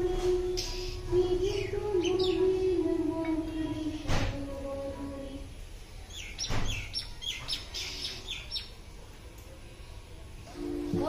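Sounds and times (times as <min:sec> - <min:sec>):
bird chirping: 0:00.6 - 0:03.5, 0:06.0 - 0:08.9.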